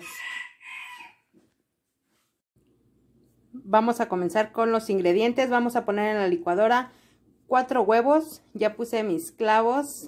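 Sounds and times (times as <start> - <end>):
rooster crowing: 0.0 - 1.4.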